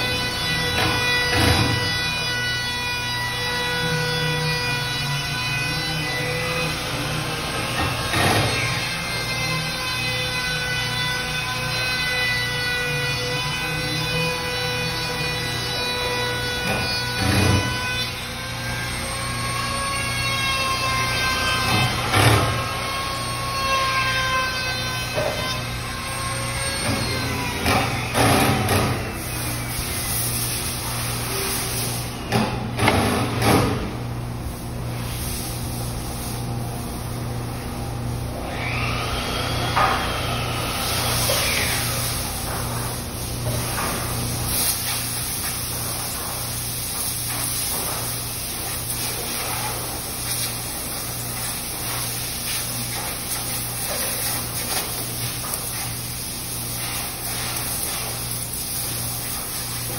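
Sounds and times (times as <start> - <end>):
trim router whining: 0.0 - 30.0, 38.2 - 44.3.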